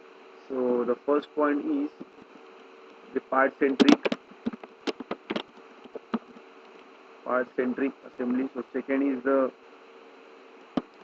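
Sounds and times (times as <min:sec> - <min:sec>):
steady low buzz: 0:00.0 - 0:11.0
keyboard typing: 0:03.6 - 0:06.9.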